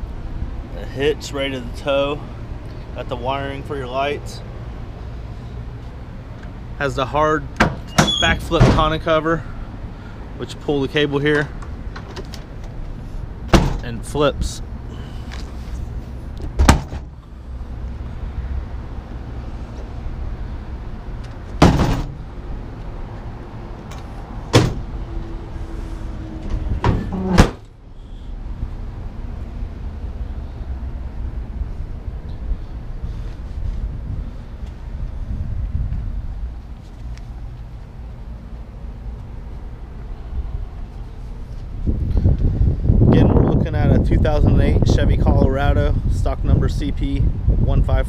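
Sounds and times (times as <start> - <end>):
steady low rumble: 0.0 - 7.6, 8.4 - 48.0.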